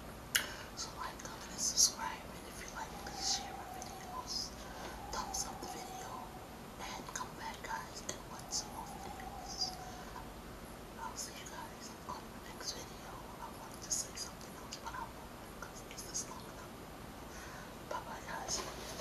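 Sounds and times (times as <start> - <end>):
woman whispering: 0.4 - 10.3, 11.0 - 19.0.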